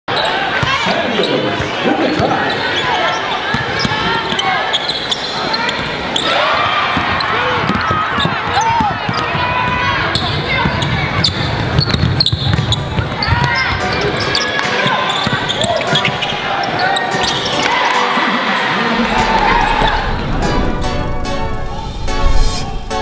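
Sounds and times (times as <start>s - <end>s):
crowd voices overlapping: 0.1s - 12.2s, 12.8s - 23.0s
basketball bouncing on court: 6.9s - 13.7s.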